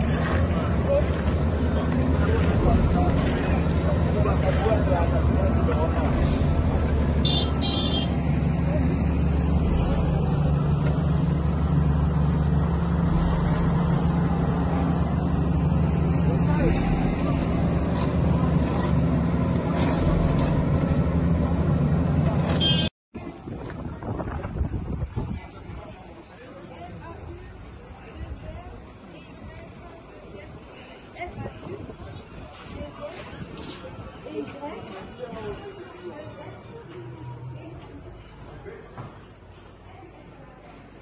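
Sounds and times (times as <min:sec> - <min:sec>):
voices: 0:00.0 - 0:20.4, 0:21.6 - 0:41.0
diesel engine running: 0:00.0 - 0:22.9.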